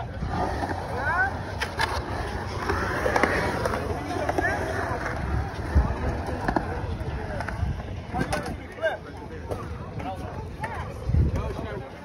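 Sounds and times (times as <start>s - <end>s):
crowd chatter and shouts: 0.0s - 12.0s
skateboard wheels rolling on concrete: 0.0s - 12.0s.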